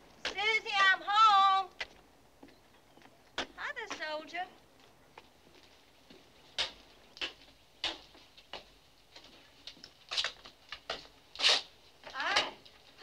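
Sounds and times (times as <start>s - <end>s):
footsteps in riding boots: 0.0s - 13.0s.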